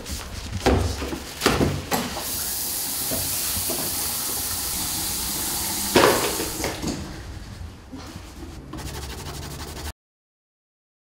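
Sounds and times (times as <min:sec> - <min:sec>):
paper towels rustling: 0:00.0 - 0:09.9
sink tap running: 0:02.2 - 0:07.0.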